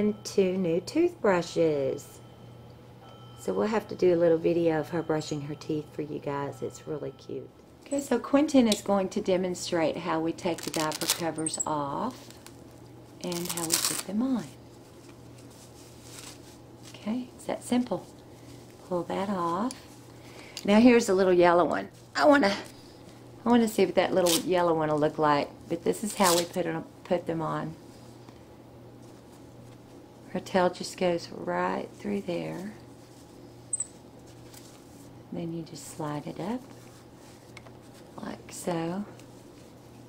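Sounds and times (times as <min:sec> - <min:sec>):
low steady hum: 0:00.0 - 0:40.0
fabric handling: 0:10.4 - 0:12.6, 0:13.2 - 0:17.0
cloth rustling: 0:10.4 - 0:17.0, 0:32.0 - 0:35.2, 0:36.5 - 0:38.2.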